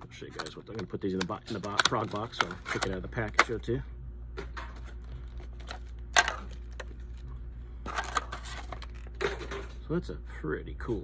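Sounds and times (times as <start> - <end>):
plastic packaging crinkling: 0.1 - 3.6, 4.8 - 7.3, 7.9 - 9.4.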